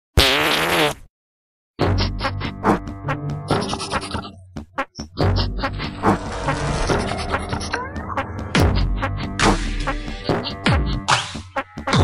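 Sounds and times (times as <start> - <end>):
fart sound effect: 0.2 - 1.1
music: 1.8 - 12.0.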